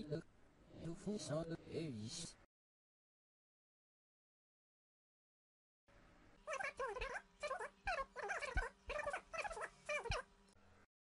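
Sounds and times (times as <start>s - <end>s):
voice-changed speech: 0.0s - 2.5s.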